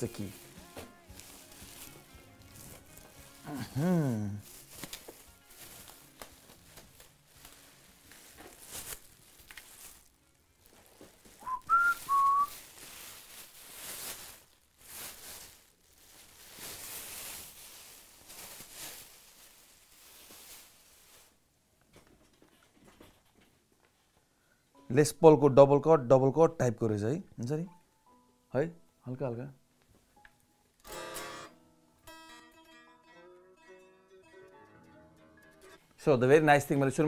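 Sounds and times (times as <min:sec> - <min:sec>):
plastic bag crinkling: 0:00.0 - 0:21.4
two-note whistle: 0:11.4 - 0:12.5.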